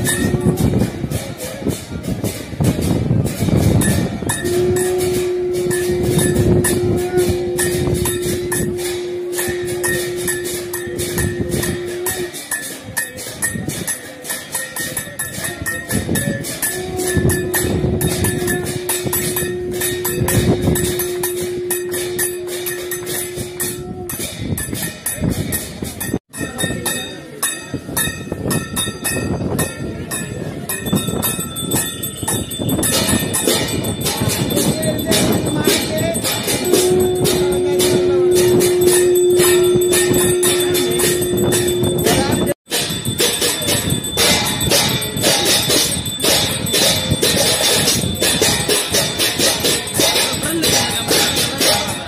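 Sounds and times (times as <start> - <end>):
bells struck in quick rhythm: 0.0 - 52.0
long steady horn note: 4.4 - 12.4, 16.8 - 24.0, 36.6 - 42.6.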